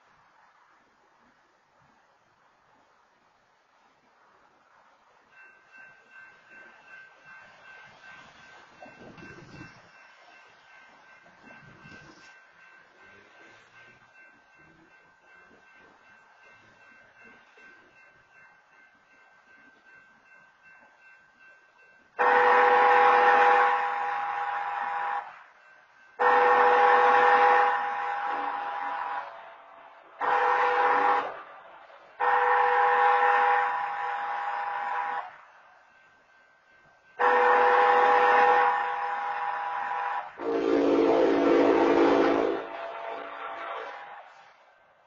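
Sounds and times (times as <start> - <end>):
train horn blasts: 22.2 - 25.6, 26.2 - 29.5, 30.2 - 35.5, 37.2 - 44.6.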